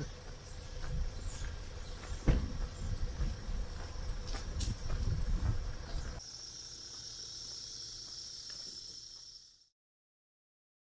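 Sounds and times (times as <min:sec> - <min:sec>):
insects chorus: 0:00.0 - 0:09.8.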